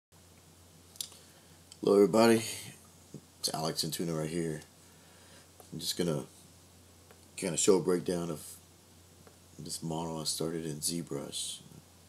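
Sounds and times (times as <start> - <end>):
faint low hum: 0.2 - 12.0.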